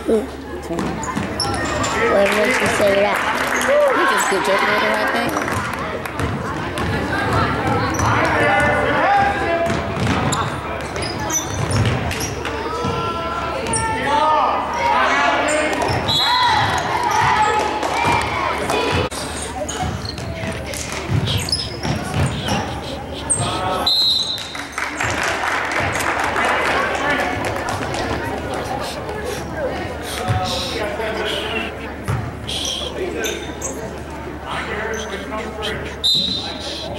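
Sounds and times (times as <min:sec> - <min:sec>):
spectators' voices and shouts: 0:00.0 - 0:36.9.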